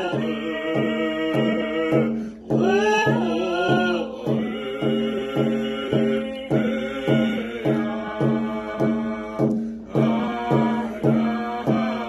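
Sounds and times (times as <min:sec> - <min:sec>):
hand drum beaten with stick: 0:00.0 - 0:12.0
man and woman singing: 0:00.0 - 0:12.0.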